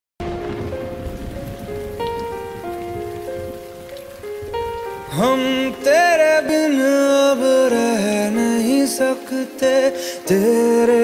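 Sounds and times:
soft piano notes: 0.2s - 11.0s
steady rain: 0.2s - 11.0s.

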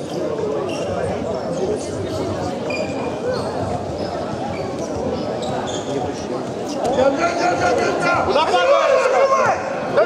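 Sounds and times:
brief high squeaks: 2.7s - 6.0s.

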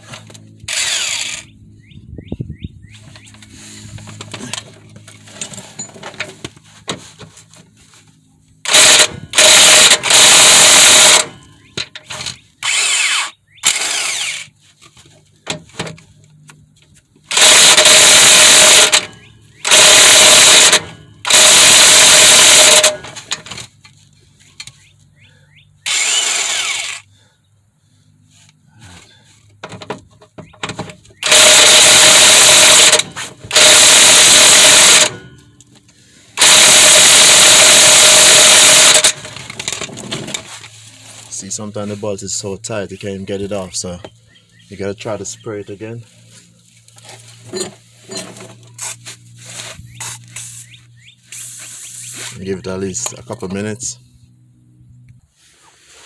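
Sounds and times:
impact wrench hammering: 8.7s - 13.1s, 17.3s - 23.5s, 30.4s - 35.5s, 36.4s - 39.8s.

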